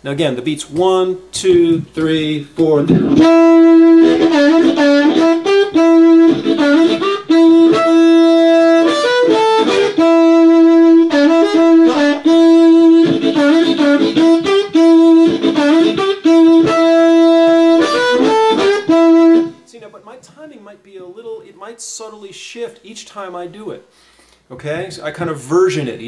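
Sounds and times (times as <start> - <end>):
blues harmonica: 2.8 - 19.7.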